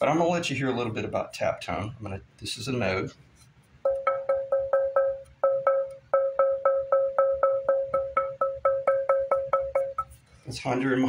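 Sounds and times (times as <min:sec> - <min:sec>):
ringing taps on wood: 0:03.8 - 0:10.2.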